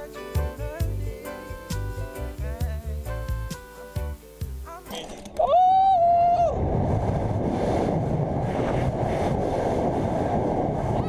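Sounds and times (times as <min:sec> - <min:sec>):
wind rushing over microphone: 0:05.6 - 0:11.0.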